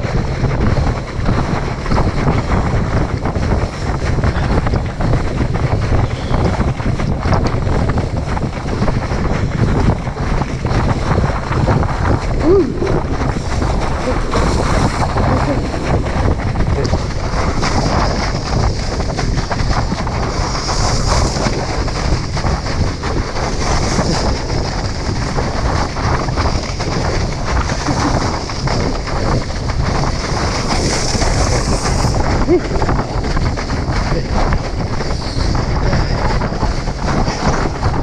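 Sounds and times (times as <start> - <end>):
wind buffeting microphone: 0.0 - 38.0
water spray hissing: 30.4 - 32.9.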